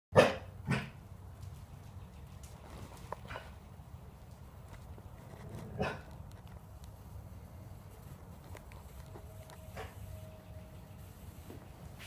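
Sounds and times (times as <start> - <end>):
dog barking: 0.2 - 1.0, 5.8 - 6.1.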